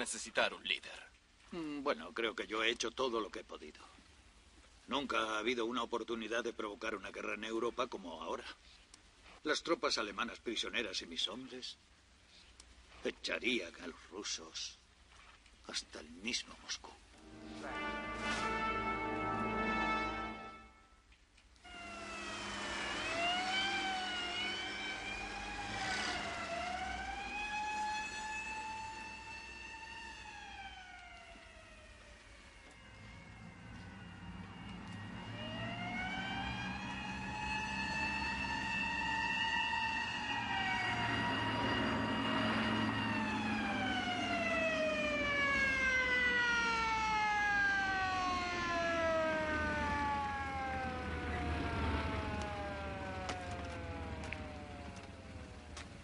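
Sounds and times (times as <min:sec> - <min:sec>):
wind-up siren wailing: 0:17.2 - 0:20.8, 0:21.6 - 0:55.9.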